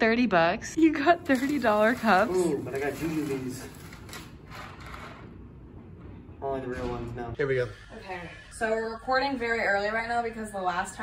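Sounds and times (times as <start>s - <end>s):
plastic bag rustling: 1.1s - 4.5s.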